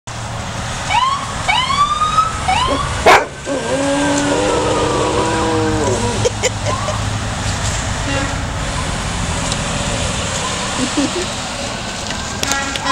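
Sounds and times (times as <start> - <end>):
dog howling: 2.7 - 6.3.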